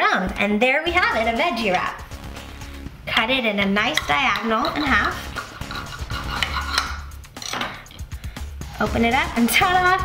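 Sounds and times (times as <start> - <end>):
background music: 0.0 - 10.0
knife scraping plate: 4.0 - 7.1.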